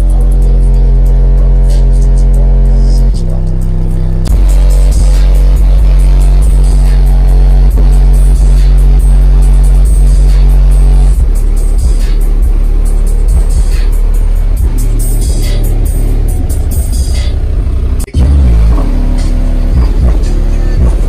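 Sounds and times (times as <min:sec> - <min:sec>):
bass-heavy music through subwoofers: 0:00.0 - 0:21.0.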